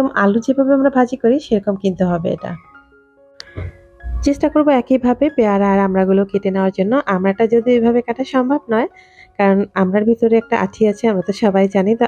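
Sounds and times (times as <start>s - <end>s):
woman speaking: 0.0s - 2.7s, 4.1s - 12.0s
soft background music: 0.0s - 12.0s.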